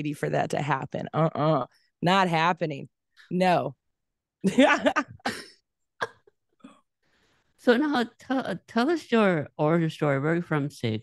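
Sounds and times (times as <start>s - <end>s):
woman laughing: 4.4s - 6.4s
woman coughing: 4.6s - 6.8s.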